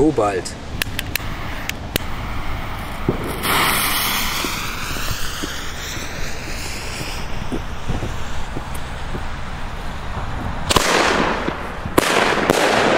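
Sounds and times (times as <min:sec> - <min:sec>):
firework fuse hissing: 0:00.6 - 0:12.9.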